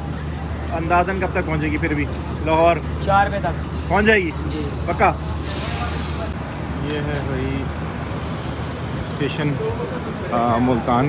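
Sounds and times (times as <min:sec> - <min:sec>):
people's voices: 0:00.0 - 0:11.0
train engine humming: 0:00.0 - 0:11.0.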